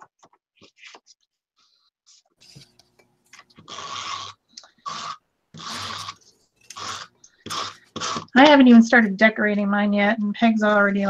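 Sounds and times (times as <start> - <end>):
tape runner drawn across paper: 0.6 - 2.9, 5.5 - 8.3.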